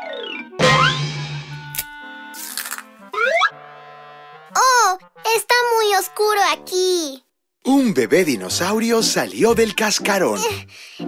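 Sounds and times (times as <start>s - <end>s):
egg cracking: 1.7s - 3.0s
soft background music: 7.7s - 11.0s.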